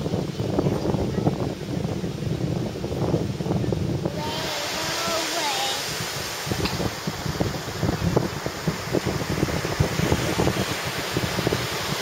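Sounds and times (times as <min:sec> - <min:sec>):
ocean surf breaking on beach: 0:00.0 - 0:12.0
wind buffeting microphone: 0:00.0 - 0:12.0.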